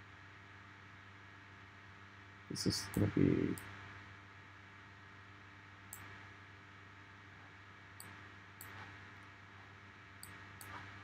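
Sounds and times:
faint steady hum with hiss: 0.0 - 11.0.

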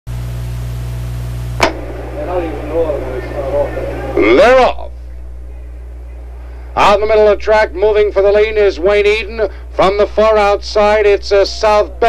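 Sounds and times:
electrical hum and hiss: 0.1 - 12.0.

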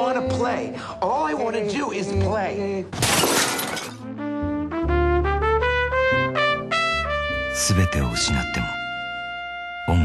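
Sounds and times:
crash of something smashing: 3.0 - 4.0.

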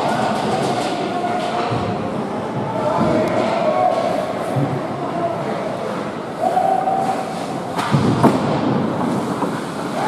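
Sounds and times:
long held shout: 6.4 - 7.2.

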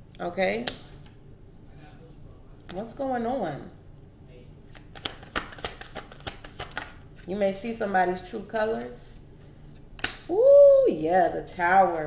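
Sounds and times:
cards being shuffled: 4.7 - 7.3.

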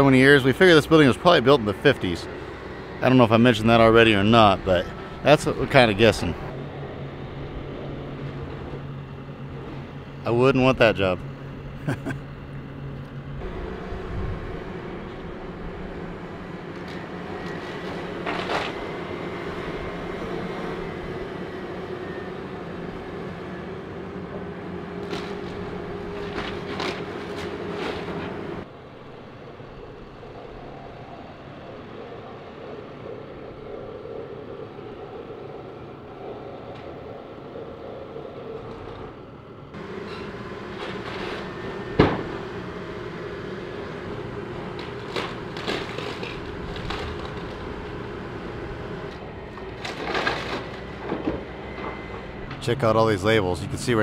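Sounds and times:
excavator diesel engine running: 0.0 - 54.0
breaking wood and tin: 25.0 - 28.2, 44.7 - 48.0, 49.6 - 51.5.

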